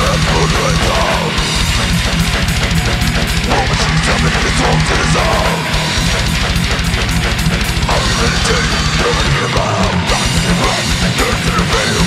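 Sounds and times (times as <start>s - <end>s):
distorted down-tuned guitars: 0.0s - 12.0s
drums: 0.0s - 12.0s
rapid kick drum strokes: 0.0s - 12.0s.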